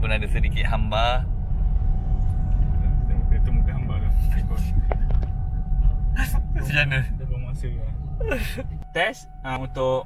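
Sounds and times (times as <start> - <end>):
car engine rumbling: 0.0 - 10.0.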